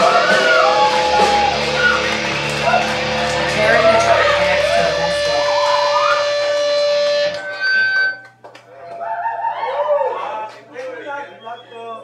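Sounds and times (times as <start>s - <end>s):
electric guitar and bass chord: 0.0s - 8.3s
high-pitched amp whine: 0.0s - 8.4s.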